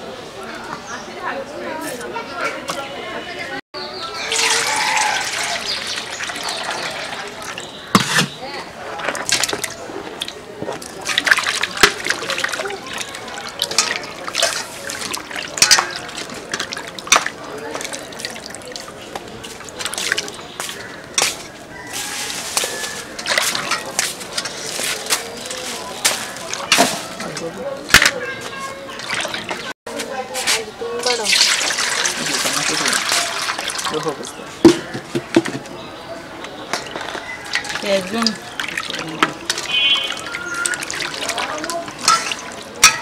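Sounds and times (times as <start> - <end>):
water poured into steel bowl: 4.2 - 7.7, 9.0 - 19.0, 31.0 - 34.2, 37.5 - 43.0
water splashing: 4.2 - 21.2, 21.9 - 28.0, 28.9 - 29.7, 31.0 - 35.4, 36.8 - 43.0.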